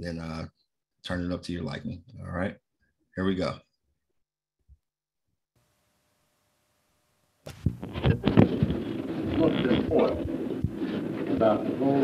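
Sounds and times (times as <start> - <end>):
tape hiss: 5.6 - 12.0
muffled voice on tape: 7.8 - 10.4.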